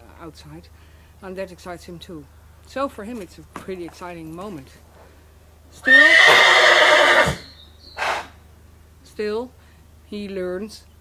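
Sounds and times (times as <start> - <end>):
horse neighing loudly: 5.8 - 8.4.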